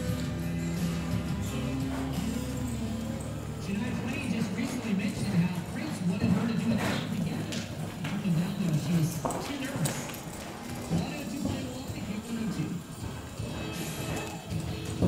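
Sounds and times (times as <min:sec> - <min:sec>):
background music: 0:00.0 - 0:15.0
horse hoofbeats on sand: 0:00.0 - 0:15.0.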